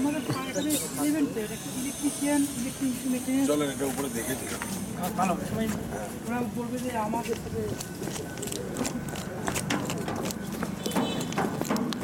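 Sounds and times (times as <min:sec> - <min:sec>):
people talking: 0:00.0 - 0:09.8.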